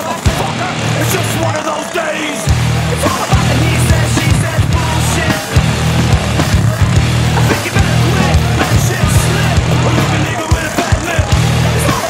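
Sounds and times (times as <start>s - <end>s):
music with heavy bass and drums: 0.0s - 12.0s.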